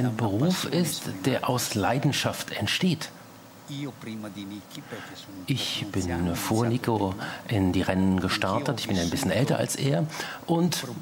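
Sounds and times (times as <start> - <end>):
people talking: 0.0 - 3.1, 3.7 - 11.0
man speaking quietly: 3.7 - 11.0.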